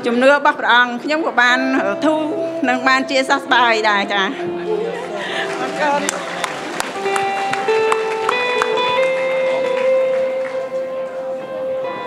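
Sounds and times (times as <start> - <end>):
keyboard playing sustained notes: 1.0 - 12.0.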